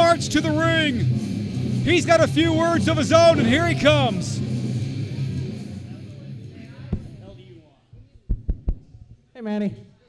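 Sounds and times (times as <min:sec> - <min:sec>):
entrance music: 0:00.0 - 0:07.4
faint crowd voices: 0:01.9 - 0:10.0
quick low thumps: 0:06.9 - 0:07.3, 0:08.2 - 0:09.2.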